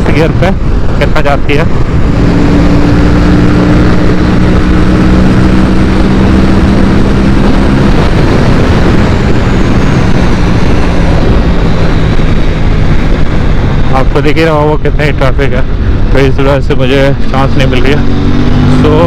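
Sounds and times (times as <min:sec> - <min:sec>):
motorcycle engine at high speed: 0:00.0 - 0:19.0
wind noise on microphone: 0:00.0 - 0:19.0.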